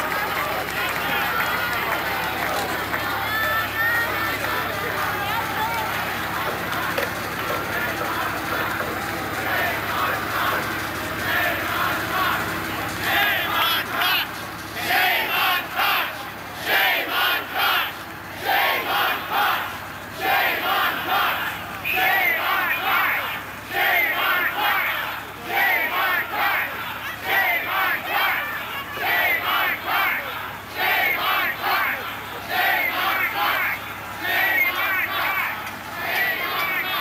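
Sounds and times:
crowd of protesters chanting: 0.0 - 37.0.

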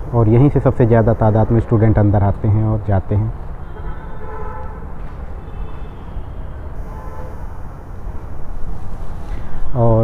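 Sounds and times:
street traffic rumble: 0.0 - 10.0
distant vehicle horns: 3.4 - 8.6.

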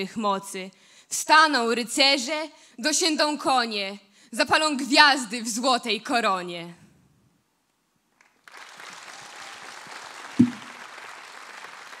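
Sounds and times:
audience applause: 8.2 - 12.0
loud low thud: 10.4 - 10.7.

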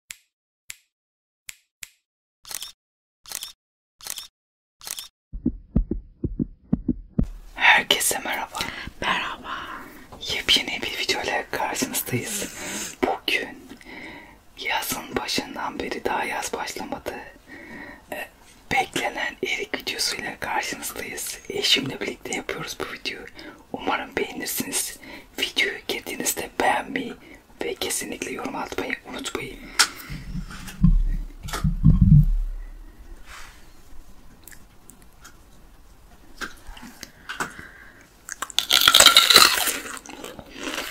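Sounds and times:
man whispering: 7.5 - 13.7, 14.6 - 17.4, 18.1 - 29.7.

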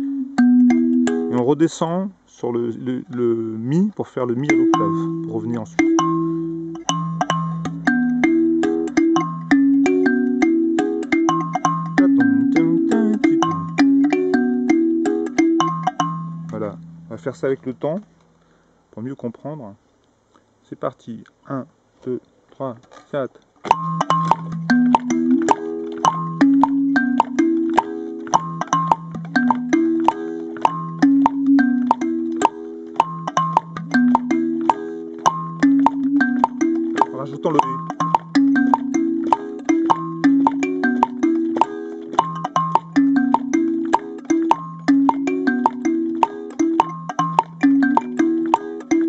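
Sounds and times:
kalimba notes ringing: 0.0 - 1.7, 3.1 - 18.0, 23.7 - 49.0
woodblock clicking: 4.4 - 17.1, 23.6 - 49.0.

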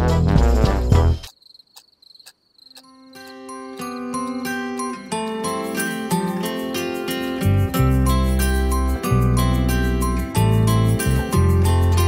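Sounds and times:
loud brass jazz music: 0.0 - 1.3
cricket chirping: 1.2 - 4.6
gentle music with low tone: 2.7 - 12.0.

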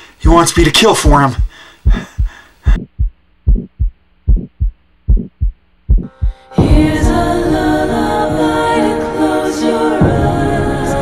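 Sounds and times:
faint low hum: 0.0 - 7.2
heartbeat thumps: 1.1 - 7.2.

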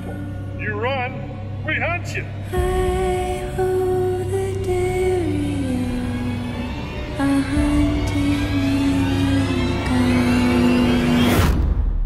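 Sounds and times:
low sustained trailer score notes: 0.0 - 12.0.

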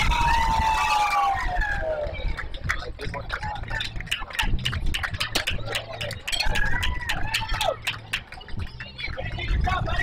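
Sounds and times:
wind rumble on microphone: 0.0 - 10.0
spectators chattering: 1.8 - 10.0.

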